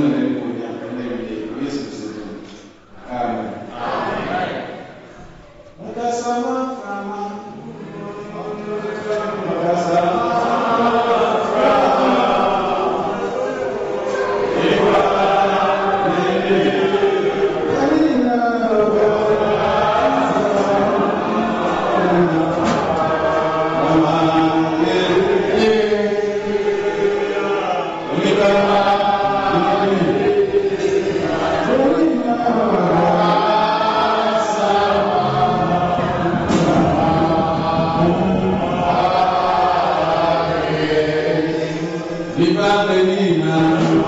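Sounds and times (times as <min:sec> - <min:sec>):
congregation chanting: 0:00.0 - 0:44.0.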